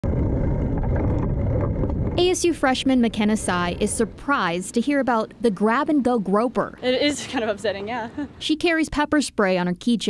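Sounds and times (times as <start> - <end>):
bicycle rolling noise: 0.0 - 4.6
wind rumble: 0.0 - 4.9.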